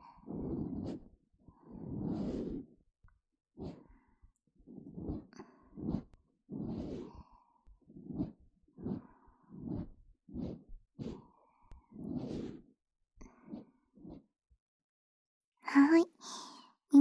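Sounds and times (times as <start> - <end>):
rubbing and scraping on ear: 0.2 - 2.9, 3.6 - 3.9, 4.6 - 14.3.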